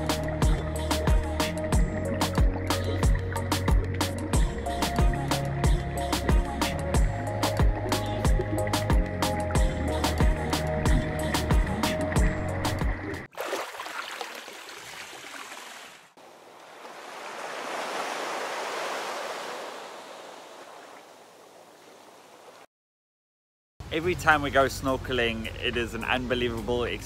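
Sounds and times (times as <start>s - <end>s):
music with steady beat: 0.0s - 13.1s
sea water washing: 12.8s - 21.4s.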